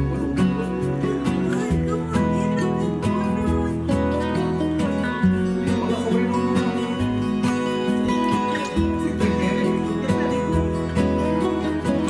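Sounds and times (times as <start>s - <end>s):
acoustic guitar song: 0.0s - 12.0s.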